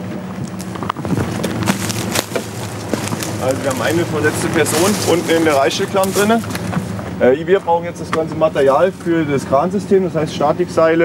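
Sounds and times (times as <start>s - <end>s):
knocks and clatters of gear: 0.0s - 7.2s
steady low rumble: 0.0s - 11.0s.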